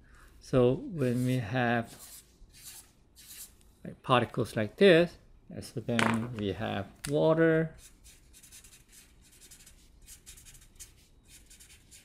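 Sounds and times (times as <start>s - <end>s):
marker scribbling on paper: 1.0s - 3.6s, 7.8s - 12.0s.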